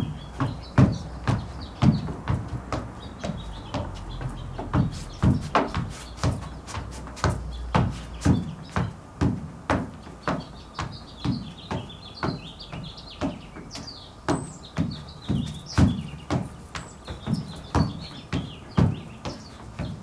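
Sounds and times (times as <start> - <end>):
footsteps on wooden deck: 0.0 - 20.0
small birds chirping: 0.0 - 20.0.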